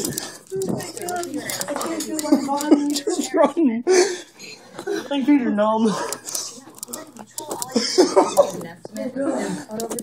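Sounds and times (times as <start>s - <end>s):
young people laughing and talking: 0.0s - 10.0s.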